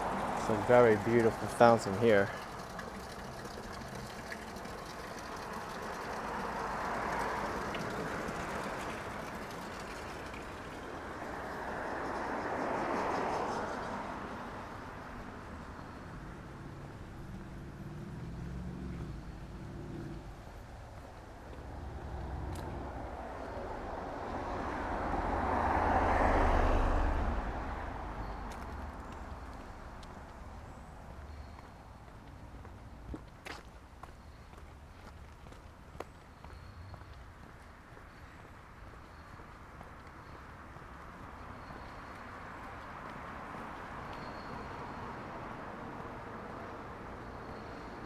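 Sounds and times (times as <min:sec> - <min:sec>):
cars passing: 0:00.0 - 0:48.0.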